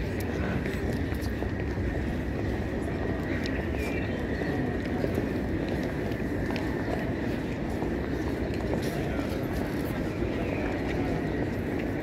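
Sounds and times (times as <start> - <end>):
murmur of voices: 0.0 - 12.0
steady low rumble: 0.0 - 12.0.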